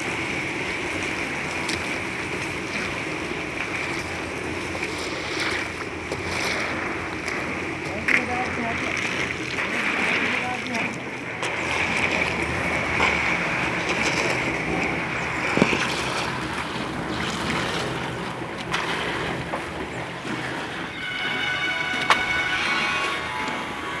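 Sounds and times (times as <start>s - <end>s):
wet concrete sloshing and scraping: 1.4s - 24.0s
mechanical drone: 19.9s - 24.0s.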